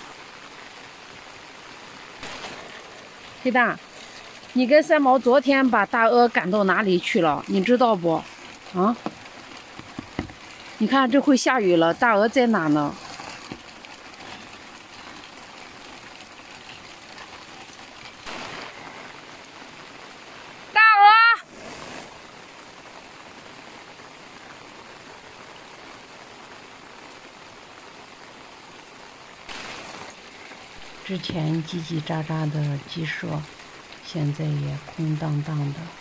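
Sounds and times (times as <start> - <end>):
rain on foliage: 0.0 - 36.0.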